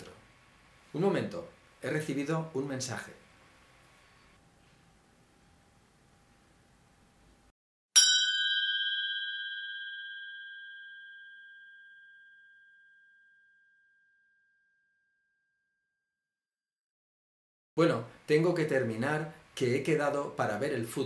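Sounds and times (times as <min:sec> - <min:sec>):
bell-like chime ringing: 0:08.0 - 0:14.8.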